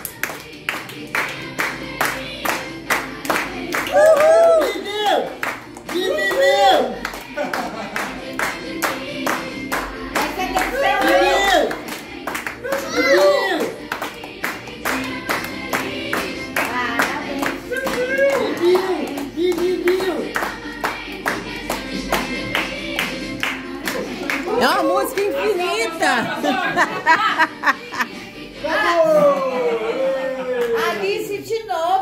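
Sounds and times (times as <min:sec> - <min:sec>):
group clapping in a steady beat: 0:00.0 - 0:26.2
group singing a birthday song: 0:00.0 - 0:31.2.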